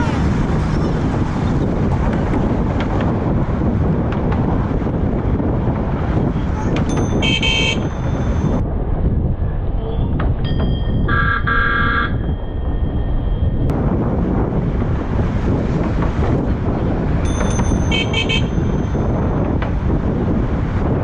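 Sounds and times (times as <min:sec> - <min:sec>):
wind on microphone: 0:00.0 - 0:21.0
bicycle horn honking: 0:06.9 - 0:08.2, 0:11.1 - 0:12.2, 0:17.7 - 0:19.0.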